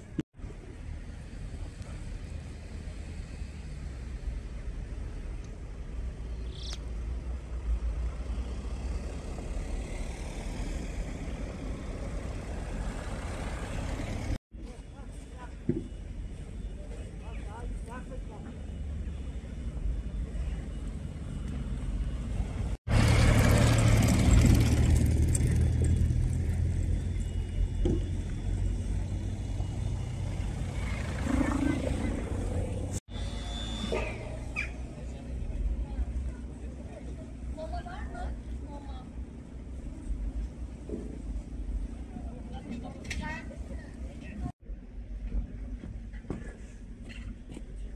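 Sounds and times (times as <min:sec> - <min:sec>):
low rumble of traffic: 0:00.0 - 0:47.9
car driving through snow: 0:22.9 - 0:26.6.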